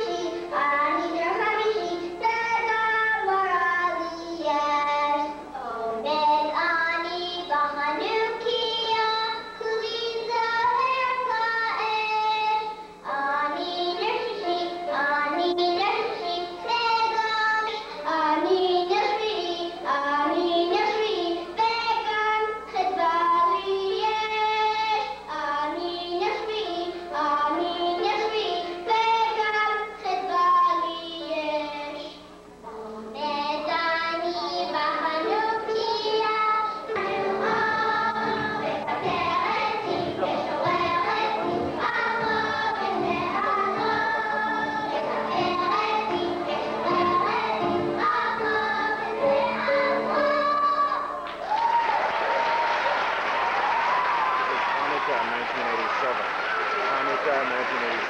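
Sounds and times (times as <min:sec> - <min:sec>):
children singing together: 0:00.0 - 0:51.3.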